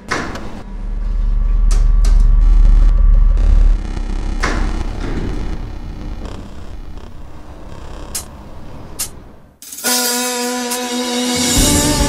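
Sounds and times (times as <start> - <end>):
deep sub-bass drone: 0.0 - 8.3
sharp noisy synth hit: 0.1 - 7.4.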